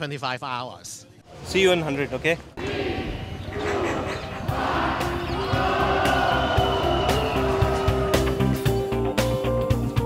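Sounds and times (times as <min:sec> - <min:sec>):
crowd cheering: 0:02.6 - 0:08.8
background music: 0:03.6 - 0:10.0.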